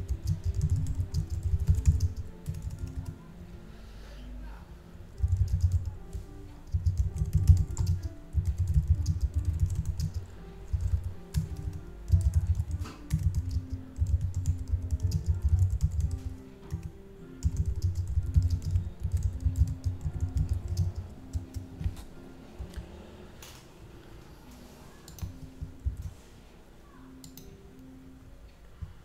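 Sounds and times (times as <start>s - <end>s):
typing on computer keyboard: 0.0s - 3.2s, 5.2s - 22.0s, 25.1s - 26.1s
faint background music: 0.0s - 29.0s.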